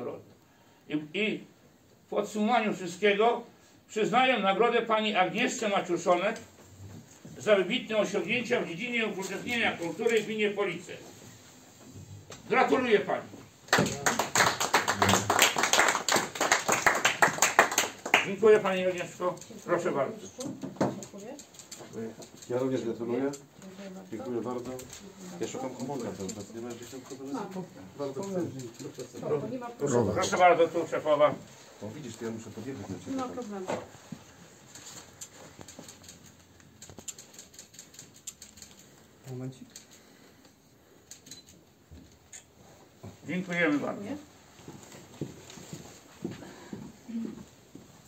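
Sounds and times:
small knocks and shuffling: 41.6s - 48.0s.

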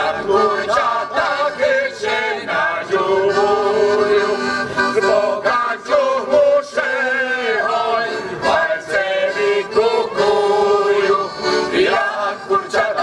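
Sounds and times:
men's voices singing in harmony: 0.0s - 13.0s.

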